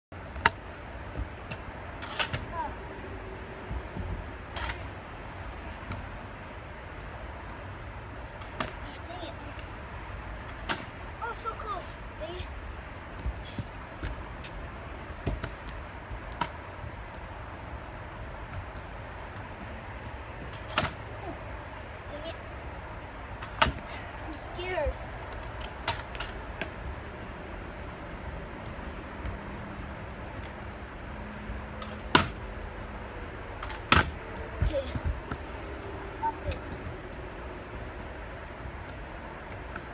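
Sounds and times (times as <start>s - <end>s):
steady low rumble: 0.1s - 39.9s.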